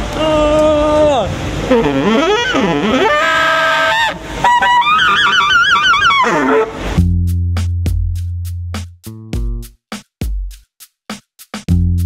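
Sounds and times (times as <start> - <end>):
tenor saxophone solo: 1.6 - 7.0.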